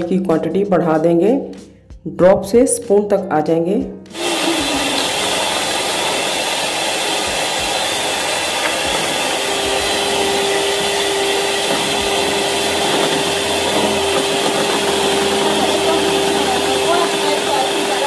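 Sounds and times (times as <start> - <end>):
electric hand mixer running: 4.1 - 18.0.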